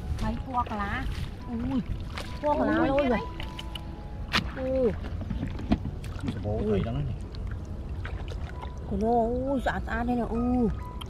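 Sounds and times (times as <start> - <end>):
water splashing and dripping: 0.0 - 11.0.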